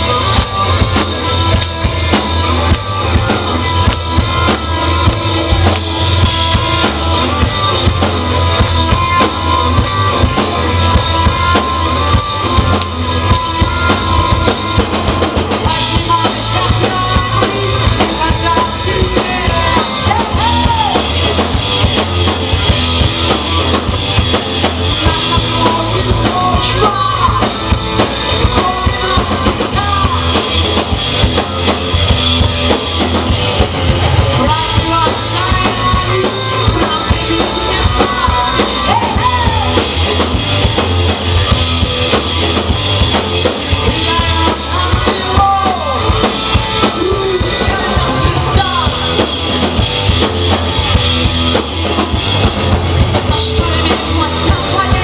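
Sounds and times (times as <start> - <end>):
bass guitar: 0.0 - 55.0
drum kit: 0.0 - 55.0
live rock band playing: 0.0 - 55.0
woman singing into microphone: 34.5 - 39.8.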